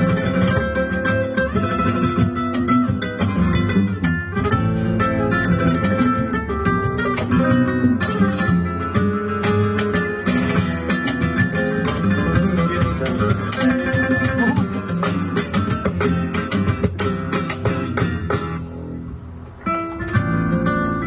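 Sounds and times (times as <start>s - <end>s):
flamenco guitar playing: 0.0s - 21.0s.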